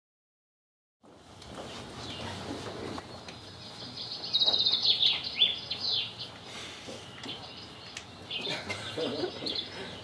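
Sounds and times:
birds chirping and trilling: 0:02.0 - 0:10.0.

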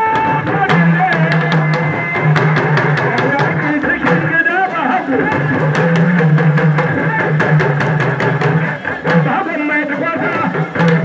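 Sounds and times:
rapid sharp drum strikes: 0:00.0 - 0:11.0.

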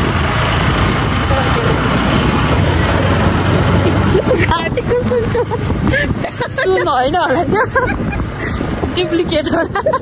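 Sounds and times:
motorcycle engine hum: 0:00.0 - 0:10.0
wind rushing on microphone: 0:00.0 - 0:10.0.

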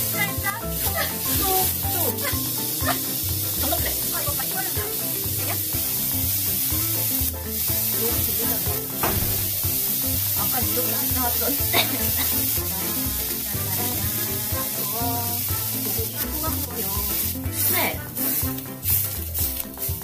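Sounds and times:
background music: 0:00.0 - 0:20.0
beef sizzling: 0:00.0 - 0:20.0.

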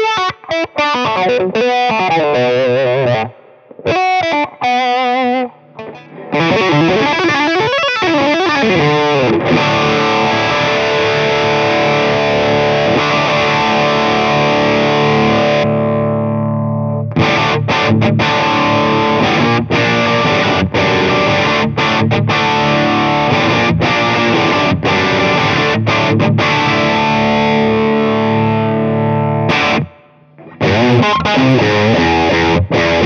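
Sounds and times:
distorted electric guitar riffing: 0:00.0 - 0:33.0
held guitar chord ringing: 0:00.0 - 0:33.0.

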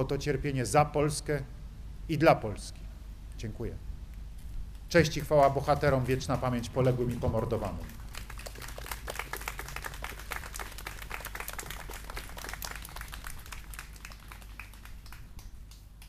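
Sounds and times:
crowd applauding: 0:05.1 - 0:15.9.

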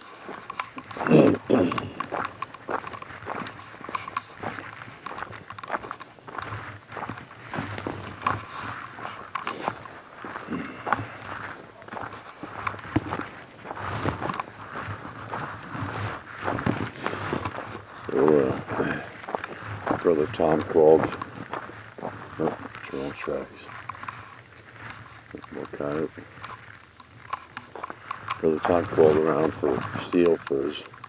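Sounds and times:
footsteps on thin snow: 0:00.0 - 0:31.0.

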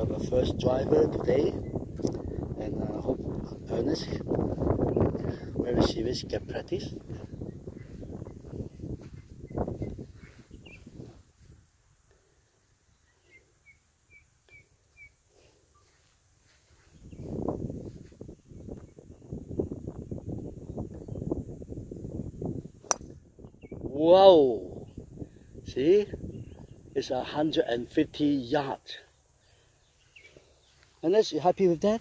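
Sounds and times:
wind rumbling on microphone: 0:00.0 - 0:11.8, 0:16.6 - 0:28.1
bird chirping: 0:07.2 - 0:11.1, 0:12.8 - 0:16.0, 0:29.1 - 0:31.2
golf ball struck with sharp crack: 0:22.8 - 0:23.2.

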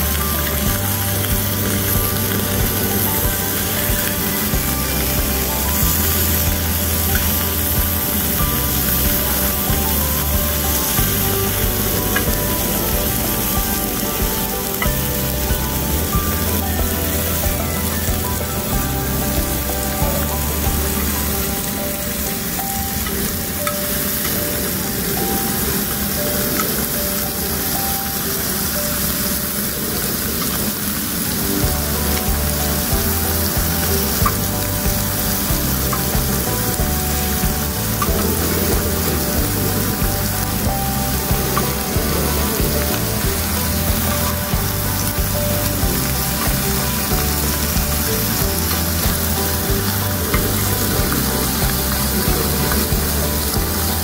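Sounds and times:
low bass background music: 0:00.0 - 0:27.9, 0:30.8 - 0:54.0
pork sizzling in fat: 0:00.0 - 0:54.0.

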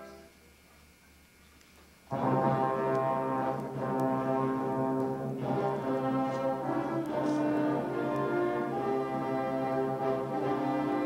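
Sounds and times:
concert band chord: 0:02.1 - 0:11.0
trumpets: 0:02.1 - 0:11.0.

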